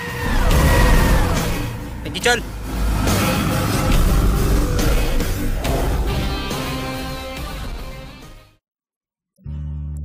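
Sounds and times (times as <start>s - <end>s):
dramatic film score: 0.0s - 8.6s.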